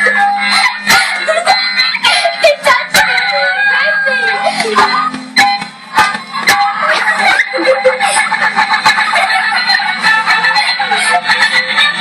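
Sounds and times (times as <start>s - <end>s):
electronic toy song: 0.0s - 12.0s.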